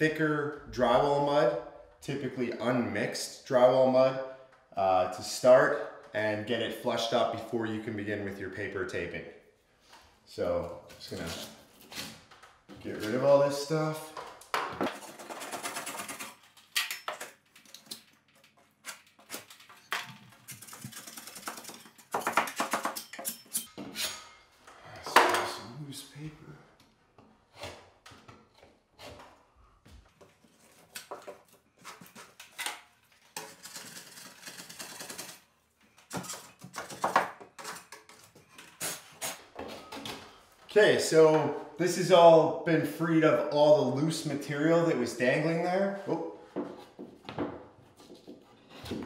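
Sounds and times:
putty knife scraping drywall: 0:36.2 - 0:39.6.

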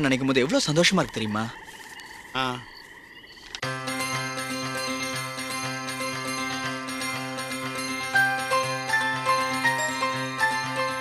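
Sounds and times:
frogs croaking: 0:00.0 - 0:11.0
music with held notes: 0:03.6 - 0:11.0.

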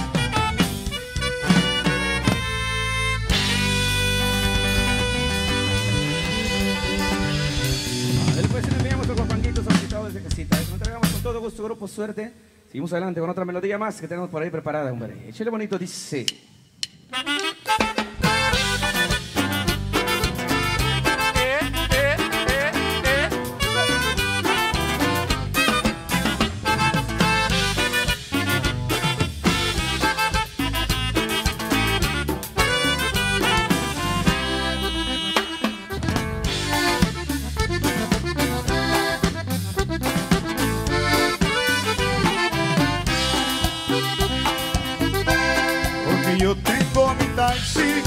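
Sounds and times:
saxophone: 0:00.0 - 0:08.4, 0:17.1 - 0:46.8
button accordion: 0:00.0 - 0:08.6, 0:17.1 - 0:48.0
band playing instrumental: 0:00.0 - 0:11.5, 0:16.3 - 0:48.0
electric bass: 0:00.0 - 0:11.5, 0:18.1 - 0:48.0
congas and drums: 0:00.0 - 0:11.7, 0:15.9 - 0:48.0.

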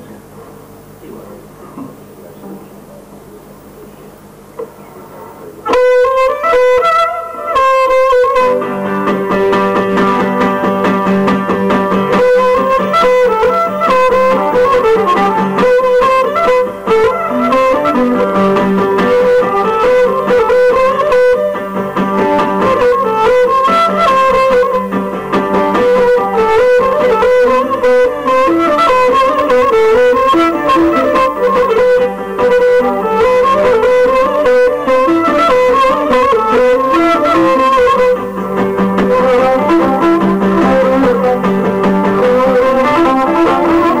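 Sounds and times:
guitar accompaniment: 0:00.0 - 0:44.0
lyra melody: 0:05.7 - 0:44.0.

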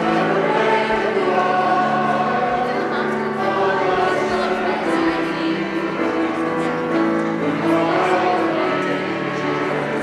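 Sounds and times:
choir singing: 0:00.0 - 0:10.0
piano accompaniment: 0:00.0 - 0:10.0.

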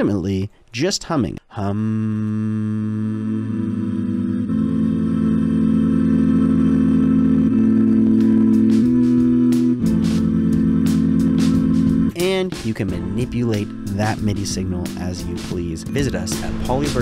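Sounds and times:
synthetic vocal chords: 0:01.5 - 0:17.0.

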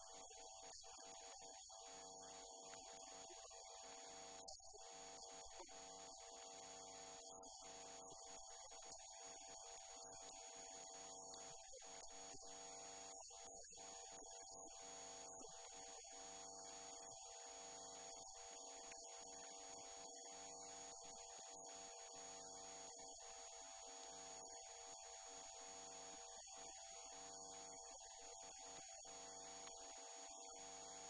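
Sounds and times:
faint electrical hum with whine: 0:00.0 - 0:31.0.

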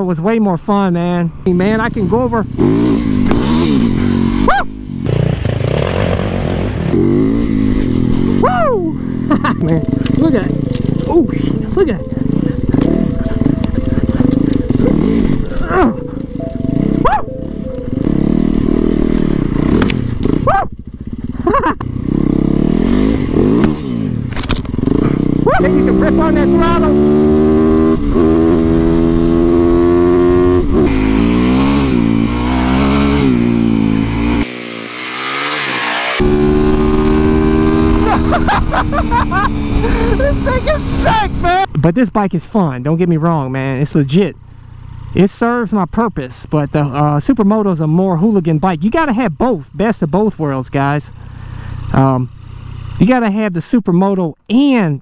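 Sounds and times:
motorcycle engine revving: 0:01.5 - 0:41.7, 0:42.9 - 0:53.2.

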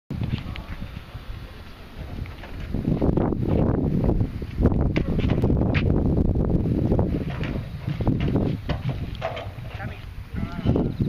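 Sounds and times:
wind buffeting microphone: 0:00.1 - 0:11.0.

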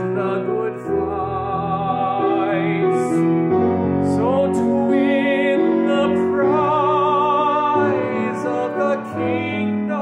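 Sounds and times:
man singing with vibrato: 0:00.0 - 0:10.0.

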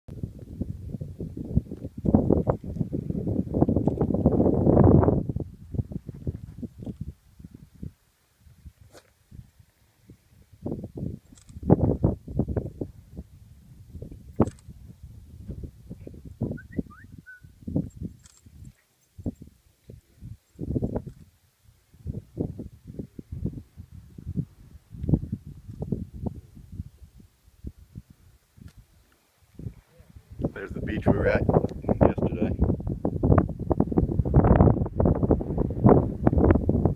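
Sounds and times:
wind buffeting microphone: 0:00.1 - 0:36.9
short high chirps: 0:16.5 - 0:17.6.

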